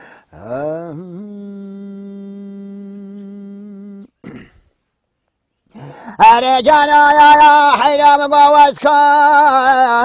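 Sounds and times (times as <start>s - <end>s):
man singing a long note: 0.3s - 4.1s, 6.2s - 10.0s.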